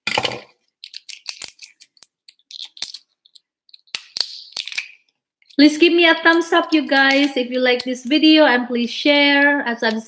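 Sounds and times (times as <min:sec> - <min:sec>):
plastic wrap crackling: 0:00.0 - 0:10.0
scissors cutting: 0:06.3 - 0:08.2.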